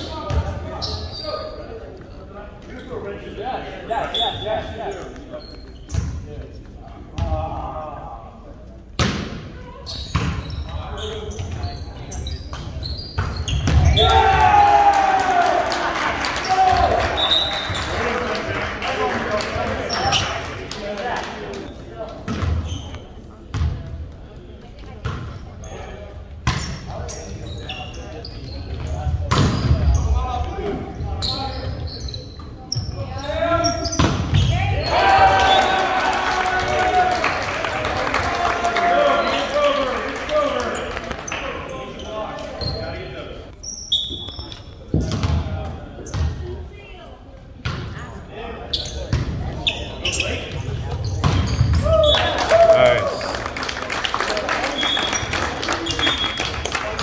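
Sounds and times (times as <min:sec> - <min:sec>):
many voices shouting: 0:14.0 - 0:17.2.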